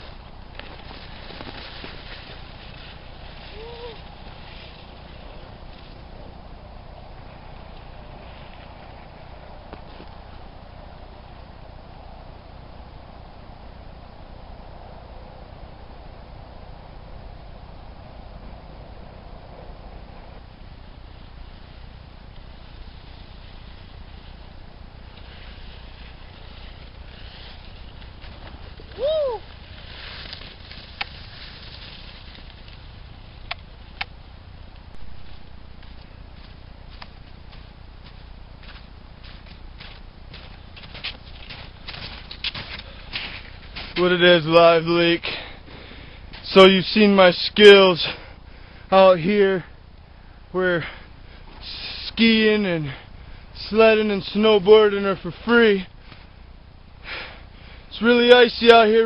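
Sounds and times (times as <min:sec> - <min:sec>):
wind rumble on microphone: 0:00.0 - 0:51.6
high cry rising and falling: 0:28.8 - 0:29.6.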